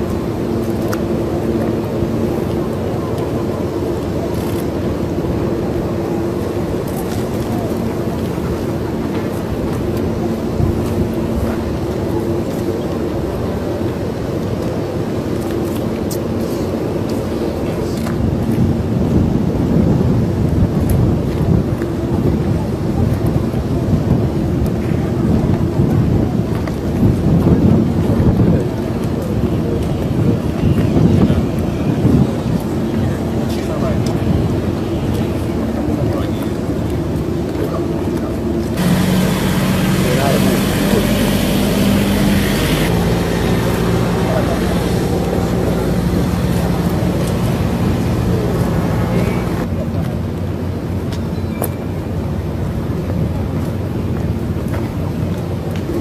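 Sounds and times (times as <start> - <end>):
jet engines rumbling: 0.0 - 56.0
wind buffeting microphone: 0.0 - 56.0.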